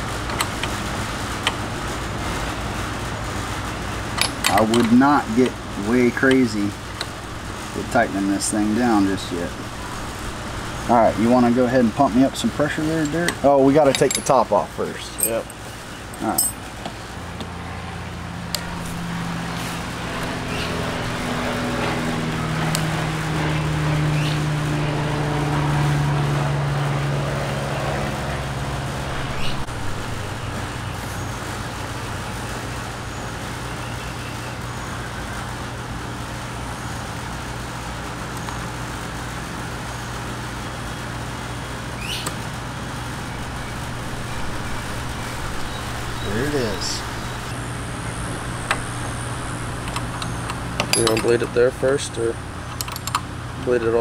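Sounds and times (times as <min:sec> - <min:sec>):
engine humming: 0:00.0 - 0:54.0
hex key metallic clicks: 0:48.4 - 0:51.4, 0:52.6 - 0:53.3.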